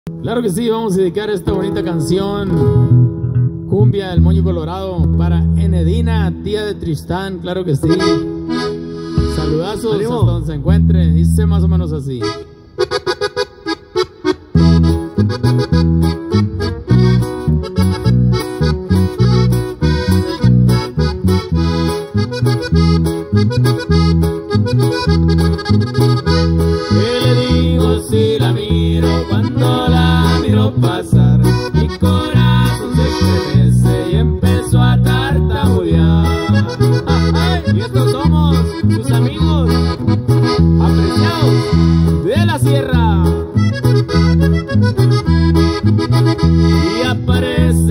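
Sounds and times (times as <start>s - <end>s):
instrumental cumbia band: 0.1s - 47.9s.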